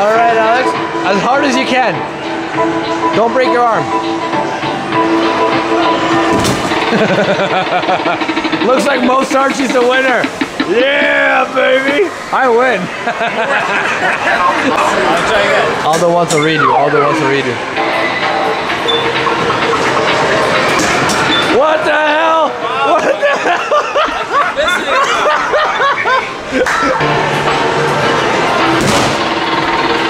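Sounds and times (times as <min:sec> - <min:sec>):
arcade machines clatter: 0:05.6 - 0:10.7, 0:27.6 - 0:30.0
arcade game music: 0:16.4 - 0:20.7.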